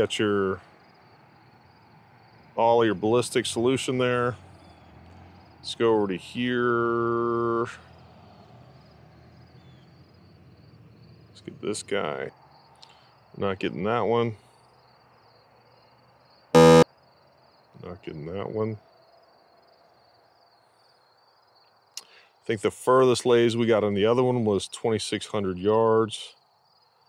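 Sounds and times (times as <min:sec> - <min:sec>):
crickets chirping: 0:00.0 - 0:25.4, 0:26.3 - 0:27.0
insects trilling: 0:14.5 - 0:22.4, 0:26.4 - 0:27.0
brief high note: 0:16.6 - 0:16.8.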